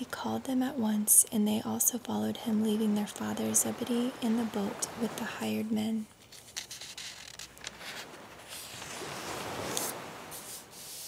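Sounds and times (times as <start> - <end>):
recorded ocean waves: 0.0 - 11.0
thin pages rustling: 6.1 - 11.0
paper crackle: 6.2 - 10.6.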